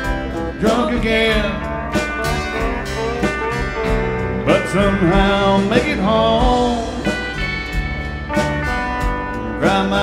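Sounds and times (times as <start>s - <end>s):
bass line: 0.0s - 10.0s
country band music: 0.0s - 10.0s
guitar fill: 0.0s - 10.0s
person singing: 0.4s - 2.0s, 4.4s - 7.2s, 9.6s - 10.0s.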